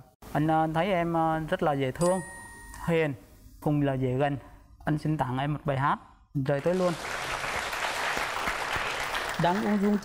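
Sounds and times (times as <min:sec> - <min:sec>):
audience applauding: 0:06.6 - 0:10.0.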